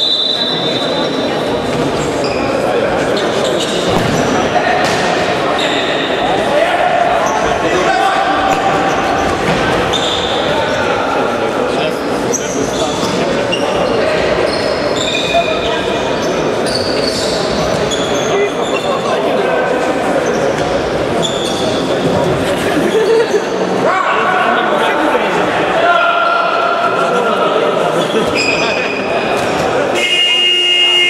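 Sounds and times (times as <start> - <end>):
shoes squeaking on floor: 0.0 - 6.1, 8.4 - 10.5, 12.3 - 19.2, 20.2 - 22.1, 28.0 - 29.1
players' voices: 0.0 - 31.0.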